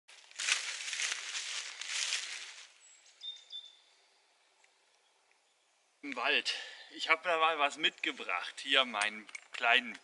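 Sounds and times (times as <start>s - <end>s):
footsteps crunching dry leaves: 0.1s - 3.3s
high thin bird calls: 2.8s - 3.9s.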